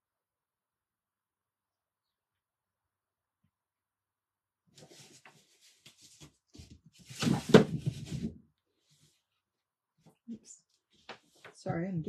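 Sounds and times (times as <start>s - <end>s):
wooden board scraping and knocking: 6.6s - 8.4s.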